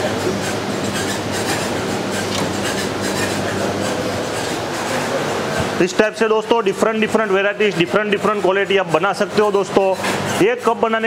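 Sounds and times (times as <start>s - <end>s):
ice cream machine motor humming: 0.0s - 11.0s.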